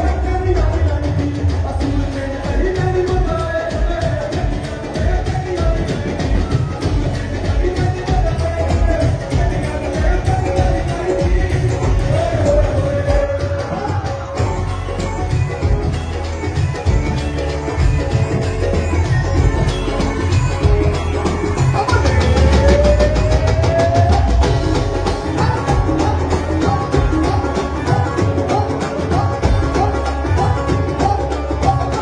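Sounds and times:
dhol and drum kit beat: 0:00.0 - 0:32.0
live band music: 0:00.0 - 0:32.0.

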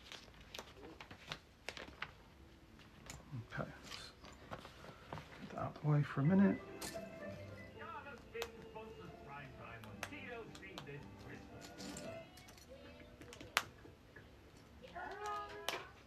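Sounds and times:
background music: 0:05.4 - 0:14.1.

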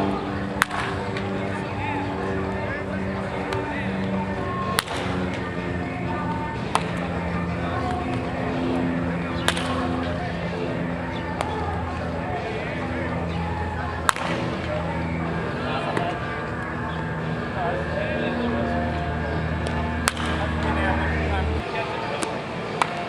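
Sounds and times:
music: 0:00.0 - 0:23.0
voices: 0:00.0 - 0:23.0
wooden bat hitting balls: 0:00.5 - 0:01.7, 0:03.4 - 0:05.5, 0:06.6 - 0:07.1, 0:09.2 - 0:10.2, 0:14.0 - 0:14.8, 0:19.6 - 0:21.1, 0:22.2 - 0:23.0.

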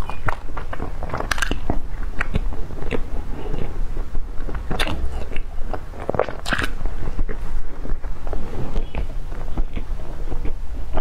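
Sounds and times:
person chewing bread: 0:00.0 - 0:11.0.

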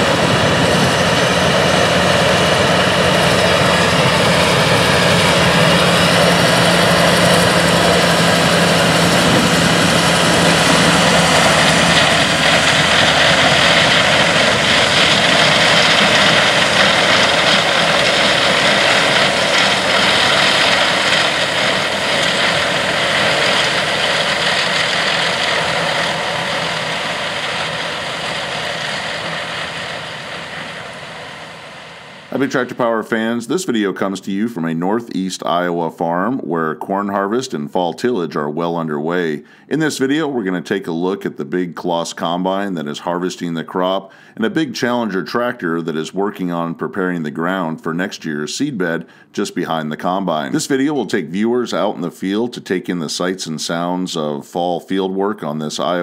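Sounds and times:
combine harvester and tractor running: 0:00.0 - 0:34.8.

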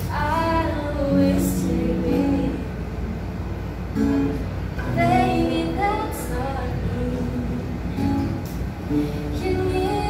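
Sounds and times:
girl singing: 0:00.0 - 0:02.8, 0:04.8 - 0:08.1, 0:09.2 - 0:10.0
acoustic guitar: 0:00.0 - 0:10.0.

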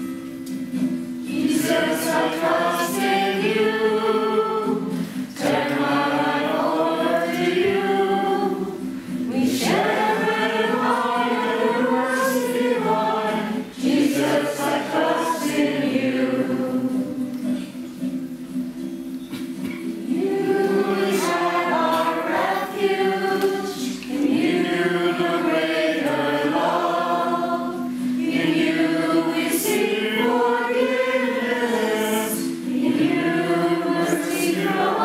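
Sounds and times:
congregation singing a hymn: 0:01.2 - 0:17.7, 0:20.0 - 0:35.0.

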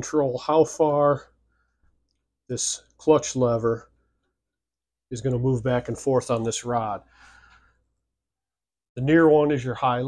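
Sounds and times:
faint short breath: 0:07.1 - 0:07.8.

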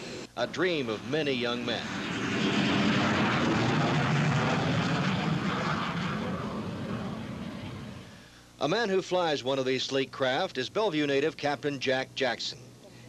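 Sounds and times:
jet engine roar on takeoff: 0:00.0 - 0:08.4.

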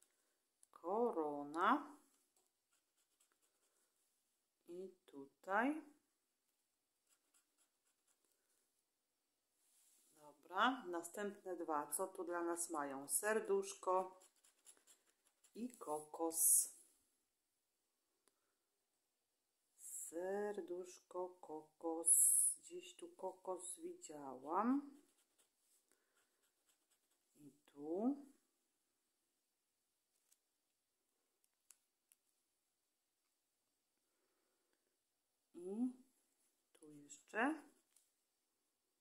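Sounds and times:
scraper scratching a card: 0:14.0 - 0:15.7, 0:24.9 - 0:27.3.

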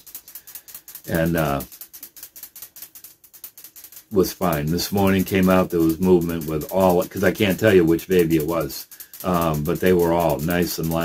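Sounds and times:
faint rapid clicking: 0:00.0 - 0:11.0.

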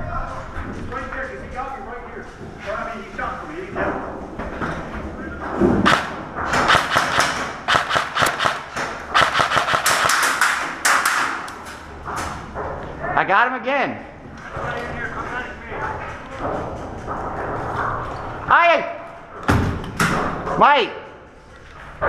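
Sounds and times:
airsoft rifle fire: 0:05.8 - 0:11.4.

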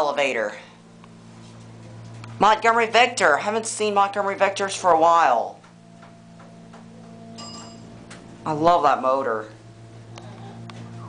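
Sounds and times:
elevator pump motor humming: 0:00.0 - 0:11.0
short high elevator chime: 0:06.9 - 0:08.1.

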